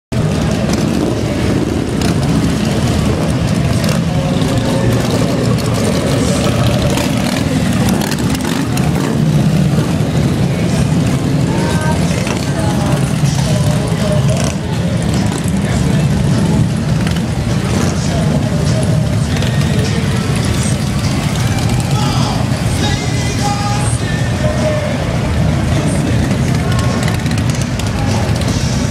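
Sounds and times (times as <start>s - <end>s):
crowd chatter: 0.1s - 28.9s
motorcycles rumbling past: 0.2s - 28.9s.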